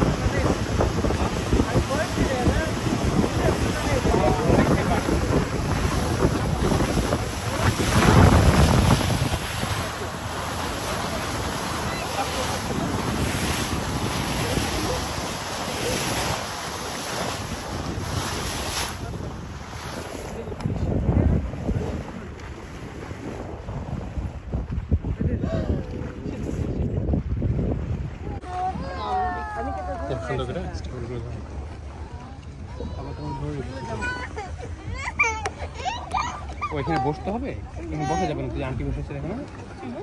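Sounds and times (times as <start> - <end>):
wind rushing over microphone: 0.0 - 30.0
water washing against boat hull: 0.0 - 40.0.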